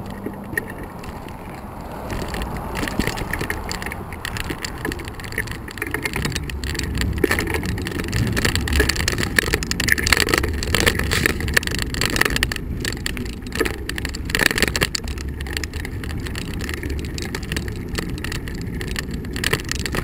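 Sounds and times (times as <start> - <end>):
bicycle tyre rumble on asphalt: 0.0 - 20.0
bike rattles and knocks: 0.0 - 20.0
wind on microphone: 0.0 - 20.0.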